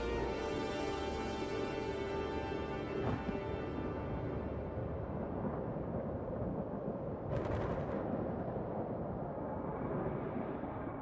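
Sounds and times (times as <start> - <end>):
thunder rumbling: 4.8 - 11.0
thunder crackle: 5.1 - 11.0.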